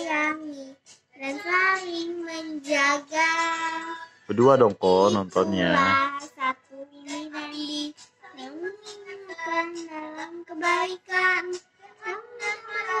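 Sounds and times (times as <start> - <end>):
child singing: 0.0 - 13.0.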